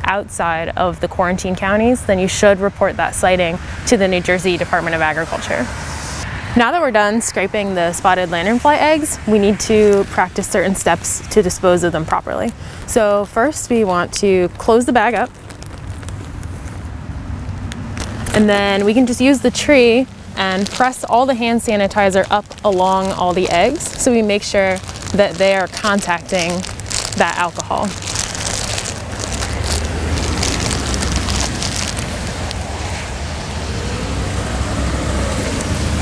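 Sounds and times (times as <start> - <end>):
low outdoor rumble: 0.0 - 36.0
plastic zip bag pressed shut: 22.2 - 32.6.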